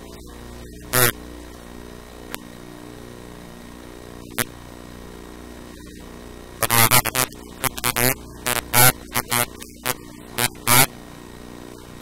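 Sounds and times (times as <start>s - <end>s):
distorted crackling voice: 0.0s - 1.6s, 4.2s - 4.6s, 5.7s - 12.0s
electrical mains hum: 0.0s - 12.0s.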